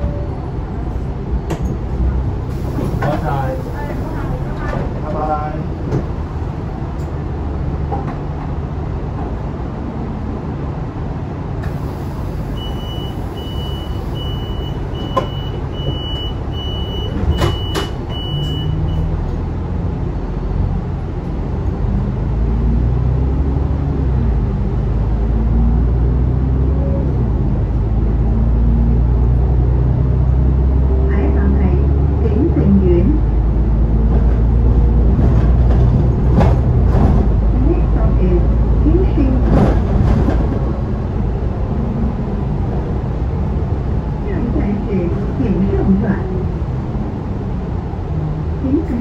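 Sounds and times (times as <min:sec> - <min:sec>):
bus diesel engine: 0:00.0 - 0:49.0
door warning beeps: 0:12.5 - 0:19.1
bus doors knocking shut: 0:13.8 - 0:19.4.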